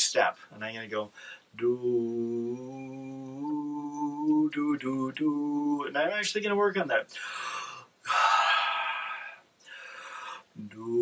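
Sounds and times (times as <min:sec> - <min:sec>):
man breathing through mouth: 0:07.1 - 0:10.5.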